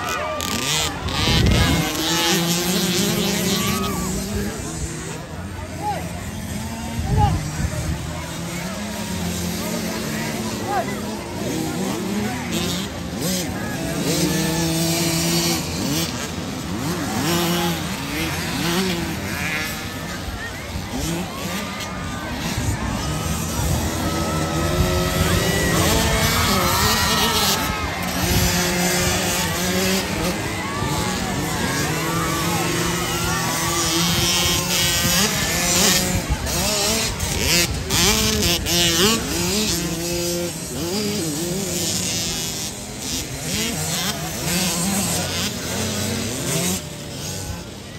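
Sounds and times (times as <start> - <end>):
distant motorbike engines droning: 0.0 - 47.9
spectators' voices: 0.0 - 47.9.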